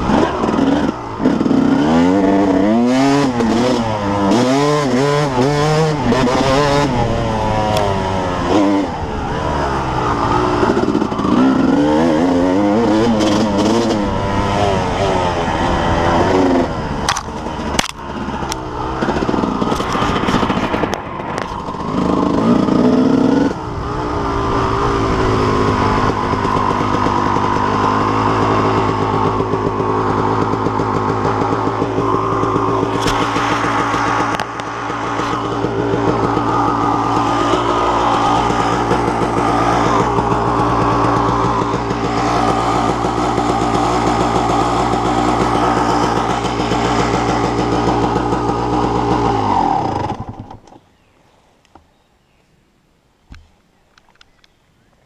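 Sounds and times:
dirt bike engine running: 0:00.0 - 0:50.7.

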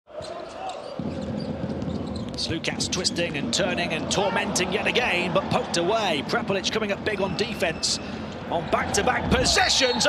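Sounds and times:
crowd noise: 0:00.1 - 0:10.0.

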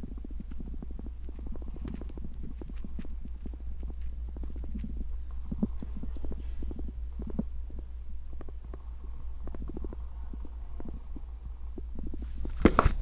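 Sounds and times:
steady low hum: 0:00.0 - 0:13.0
camera bumps: 0:12.5 - 0:13.0
camera handling knocks and rubs: 0:12.5 - 0:13.0.

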